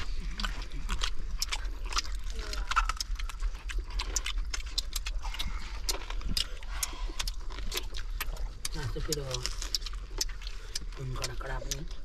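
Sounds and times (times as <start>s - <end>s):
lip smacking and chewing: 0.0s - 12.0s.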